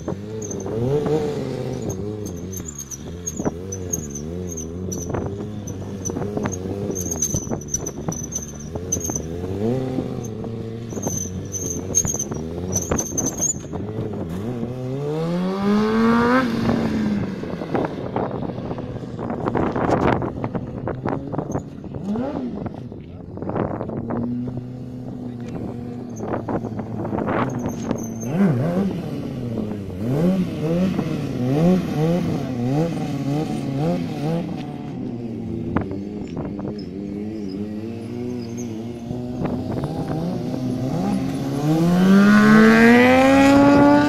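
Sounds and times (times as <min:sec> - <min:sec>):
motorcycle engine revving: 0:00.0 - 0:44.0.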